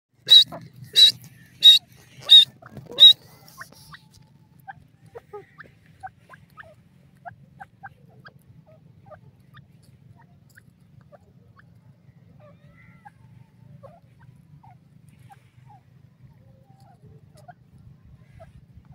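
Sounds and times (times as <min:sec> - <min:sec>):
shrill bird calls: 0:00.2 - 0:04.1.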